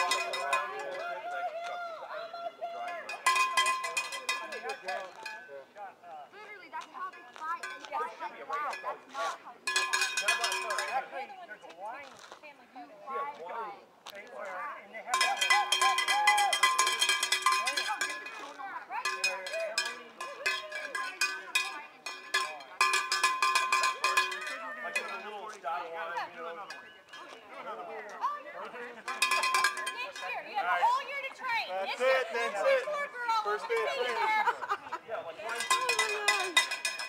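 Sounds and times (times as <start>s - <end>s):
metal hand bell ringing: 0.0s - 1.0s, 2.9s - 5.5s, 9.7s - 11.1s, 15.2s - 25.3s, 29.0s - 30.4s, 35.5s - 37.0s
people talking: 0.0s - 36.9s.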